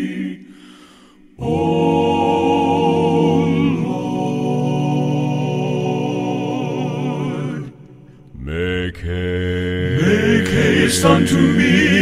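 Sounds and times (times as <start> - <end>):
male vocal quartet singing in harmony: 0.0 - 12.0.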